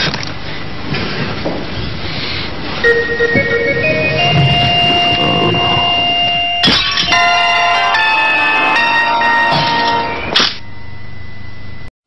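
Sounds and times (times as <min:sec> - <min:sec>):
music with held tones: 0:02.8 - 0:10.3
bells pealing: 0:02.8 - 0:10.4
sudden musical hit: 0:02.9 - 0:07.4.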